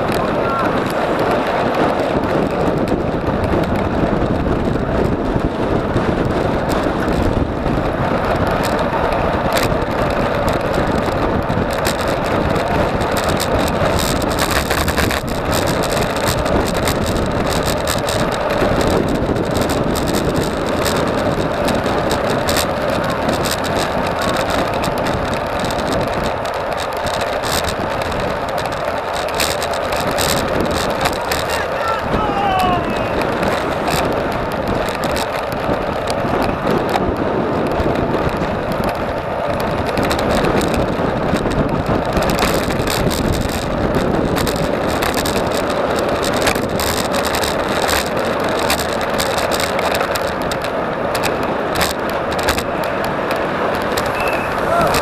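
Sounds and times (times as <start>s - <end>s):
bicycle tyres on asphalt: 0.0s - 55.0s
wind rush: 0.0s - 55.0s
light clicks and rattles: 9.5s - 32.2s, 33.2s - 55.0s.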